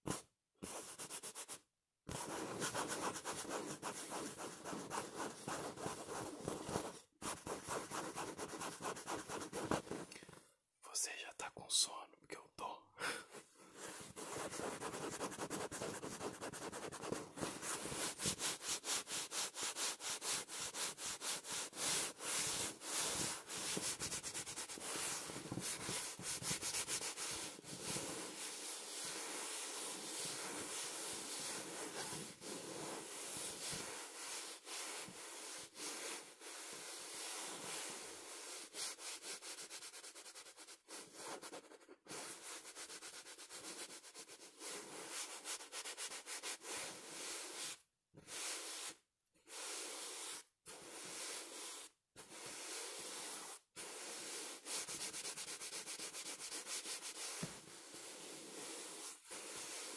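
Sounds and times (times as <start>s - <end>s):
fingers scratching fabric: 0.1s - 10.1s, 13.8s - 35.6s.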